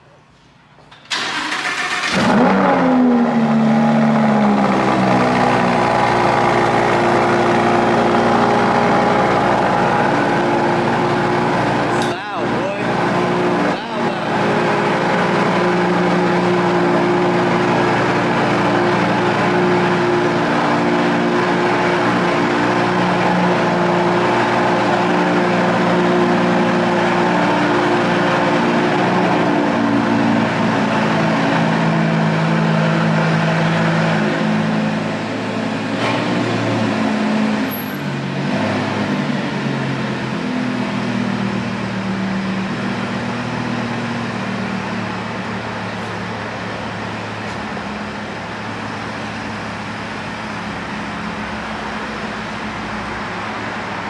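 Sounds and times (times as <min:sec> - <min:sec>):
car engine cranking and starting: 0:00.9 - 0:26.6
loud car engine idling: 0:01.1 - 0:54.0.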